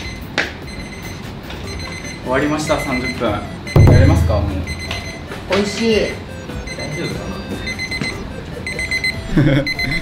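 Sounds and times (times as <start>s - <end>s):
kitchen timer beeping: 0.0s - 5.3s, 6.0s - 10.0s.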